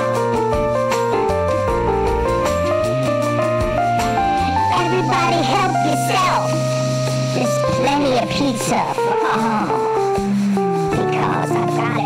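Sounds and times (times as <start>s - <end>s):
synth keyboard music: 0.0s - 12.0s.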